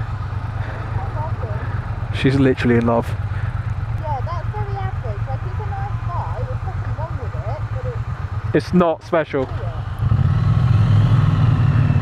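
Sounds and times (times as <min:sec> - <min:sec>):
motorcycle engines idling: 0:00.0 - 0:10.8.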